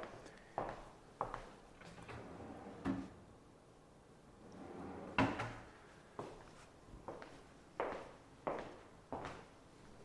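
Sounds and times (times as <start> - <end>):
drawer sliding on runners: 1.8 - 3.2, 4.5 - 5.6.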